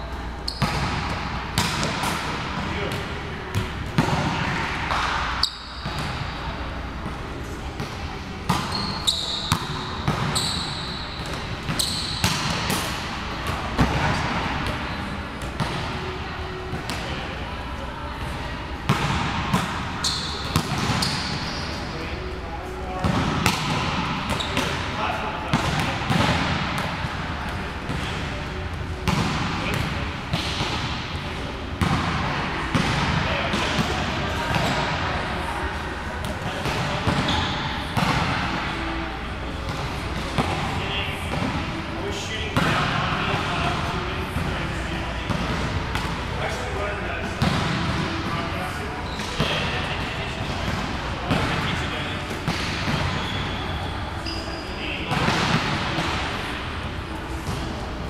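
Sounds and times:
sneaker squeaks: 0.4s - 1.9s, 4.9s - 6.4s, 8.4s - 12.8s, 20.0s - 22.3s, 24.2s - 25.0s, 37.0s - 39.0s, 48.7s - 50.8s, 51.7s - 55.5s
volleyballs hit and bouncing: 0.5s - 17.6s, 18.2s - 58.0s.

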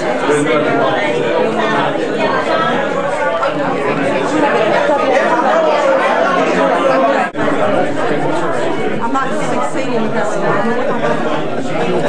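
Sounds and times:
crowd chatter in large room: 0.0s - 12.0s.

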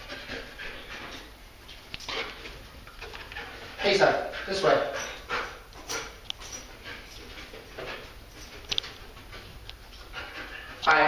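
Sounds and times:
dog panting and sniffing: 0.0s - 11.0s.

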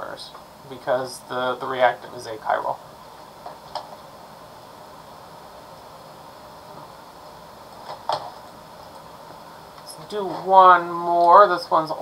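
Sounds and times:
room tone hiss: 0.0s - 12.0s.

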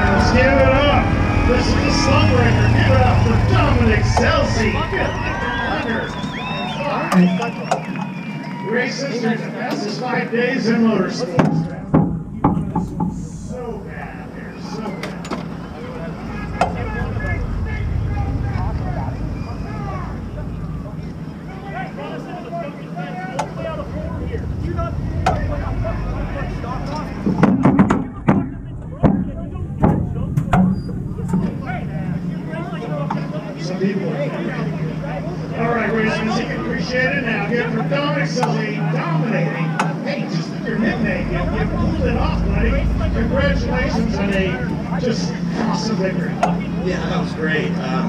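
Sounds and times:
people talking: 0.0s - 8.0s, 8.6s - 48.0s
low vehicle rumble: 0.0s - 8.8s, 11.6s - 48.0s
sharp knocks and thumps: 11.4s - 13.2s, 27.2s - 31.6s.

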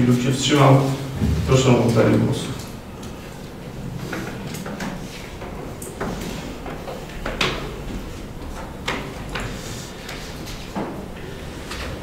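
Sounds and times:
small knocks and rustles: 1.1s - 12.0s.

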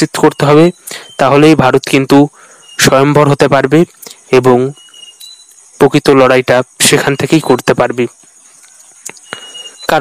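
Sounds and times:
speech: 0.0s - 4.8s, 5.8s - 8.2s, 9.2s - 10.0s
insects chirring: 0.0s - 10.0s
faint clicks: 8.2s - 9.4s.

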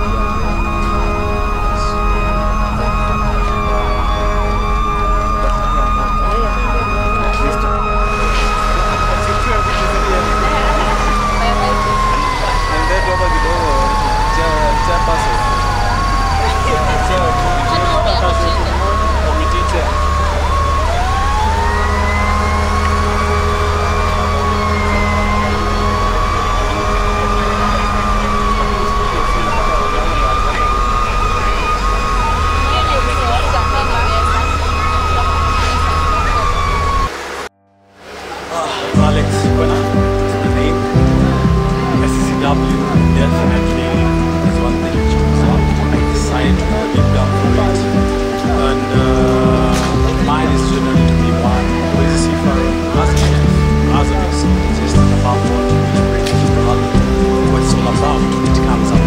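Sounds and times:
emergency siren wailing: 0.0s - 59.0s
rapidly pulsing siren tone: 0.0s - 59.0s.

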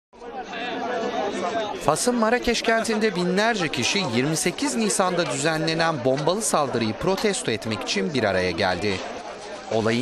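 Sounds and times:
crowd chattering: 0.2s - 10.0s.

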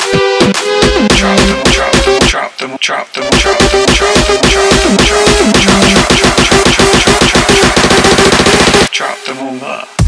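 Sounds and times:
electronic dance track: 0.0s - 10.0s.

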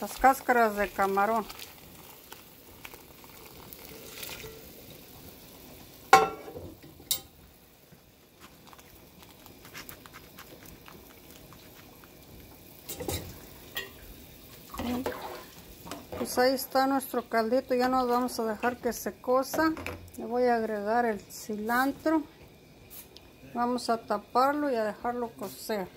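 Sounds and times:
liquid splashing into a pot: 0.1s - 7.4s, 8.4s - 16.4s.

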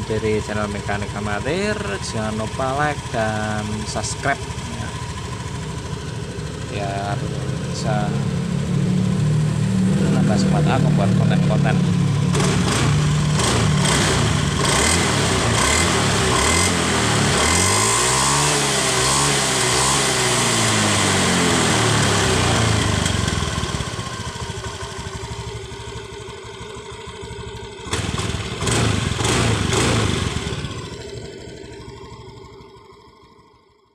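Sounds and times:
scooter engine running: 0.0s - 33.9s.

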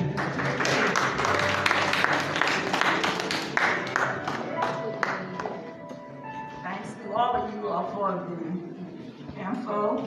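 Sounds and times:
congregation applauding: 0.0s - 5.7s
soft instrumental music: 0.0s - 10.0s.

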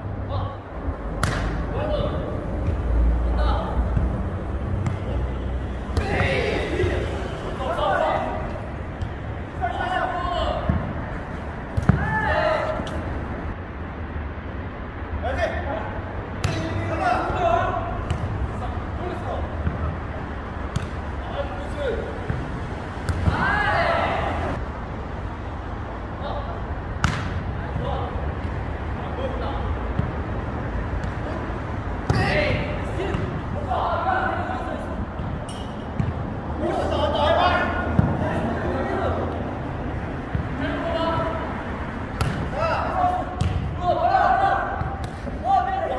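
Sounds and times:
ball smacks and bounces: 1.2s - 1.6s, 11.7s - 12.1s, 27.0s - 27.4s, 42.2s - 42.5s, 43.4s - 43.7s
players shouting: 4.9s - 13.4s, 16.5s - 24.6s, 31.1s - 35.1s, 36.0s - 45.9s.

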